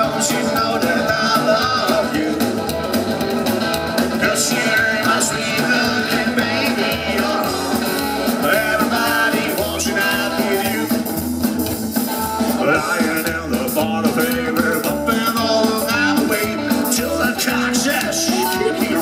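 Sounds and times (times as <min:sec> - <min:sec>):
drum kit: 0:00.0 - 0:19.0
electric guitar: 0:00.0 - 0:19.0
live band through pa: 0:00.0 - 0:19.0
upright double bass: 0:00.0 - 0:19.0.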